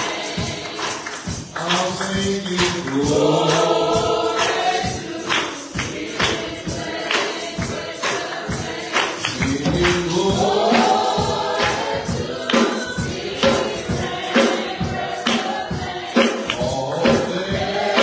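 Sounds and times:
steady percussion beat: 0.0 - 18.0
voices singing a hymn: 0.0 - 18.0.

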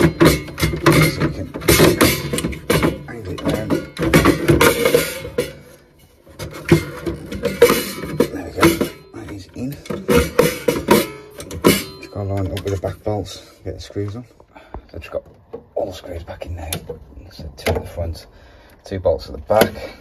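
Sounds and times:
metal knocks and clatter: 0.0 - 13.2
metal scraping: 0.0 - 14.3.

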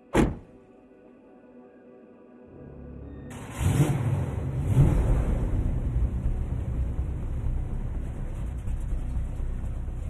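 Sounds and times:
car engine revving hard: 3.4 - 6.2.

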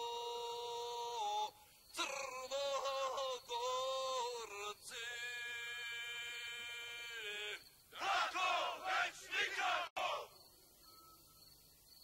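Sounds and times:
person singing long high note: 0.0 - 1.5.

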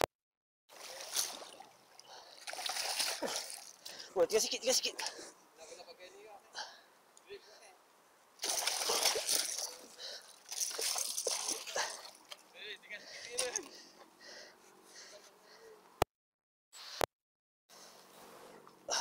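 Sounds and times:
fish thrashing and splashing: 0.7 - 3.8, 8.4 - 12.4.

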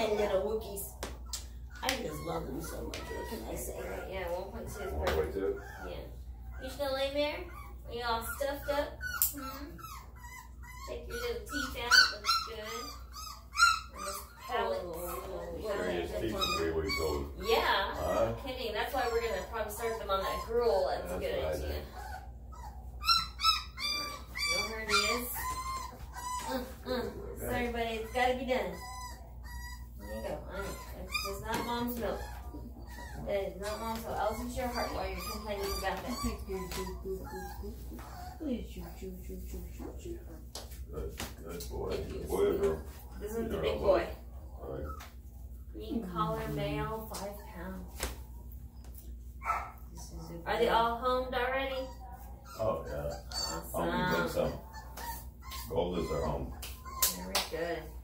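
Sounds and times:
puppy high-pitched cries: 0.0 - 38.6, 51.4 - 58.0
puppy squealing: 0.0 - 39.0, 41.8 - 45.3, 45.9 - 58.0.

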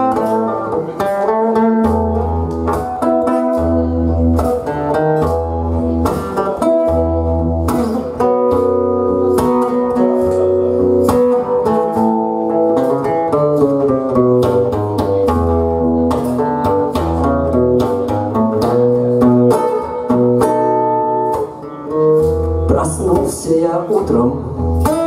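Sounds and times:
acoustic guitar picking: 0.0 - 25.0.

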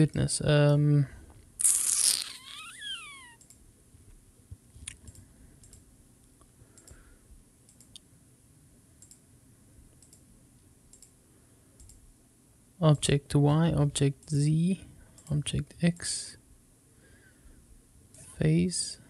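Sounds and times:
low room hum: 0.0 - 19.0
computer mouse clicks: 4.9 - 5.9, 6.8 - 7.0, 7.7 - 8.0, 9.0 - 9.2, 9.9 - 10.3, 10.9 - 11.2, 11.8 - 12.0.

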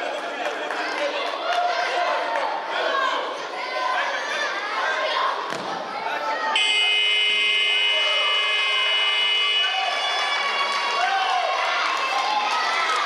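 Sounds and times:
crowd chatter: 0.0 - 13.0
children's voices: 0.7 - 6.6
electronic buzzer steady tone: 6.6 - 9.8.

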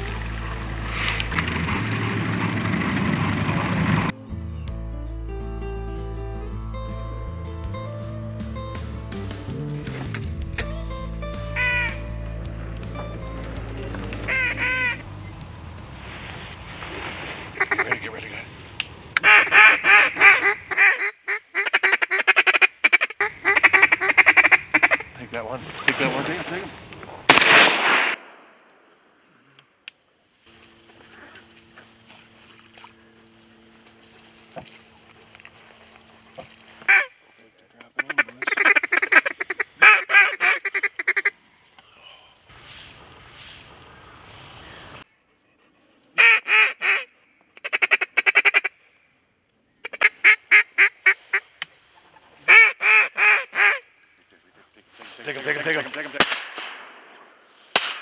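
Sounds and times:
background music with held notes: 0.0 - 2.7, 4.1 - 15.9
boat running through water: 0.0 - 4.1, 25.1 - 26.9, 30.5 - 37.2
ducks quacking: 11.4 - 12.2, 14.2 - 15.2, 17.5 - 18.5, 19.2 - 26.5, 36.4 - 41.4.

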